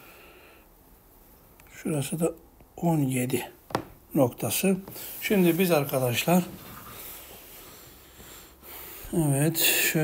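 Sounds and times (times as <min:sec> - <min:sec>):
faint breathing: 0:00.0 - 0:00.8, 0:06.8 - 0:10.0
microphone hiss: 0:00.0 - 0:10.0
person speaking: 0:01.6 - 0:06.8, 0:09.1 - 0:10.0.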